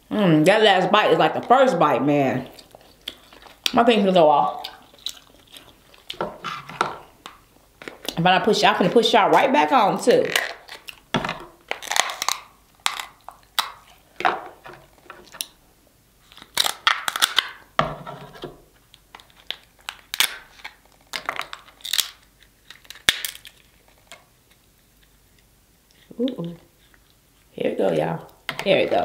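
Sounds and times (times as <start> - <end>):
crab shell cracking and snapping: 4.6 - 6.2, 11.7 - 13.9, 16.3 - 17.6, 18.9 - 24.7.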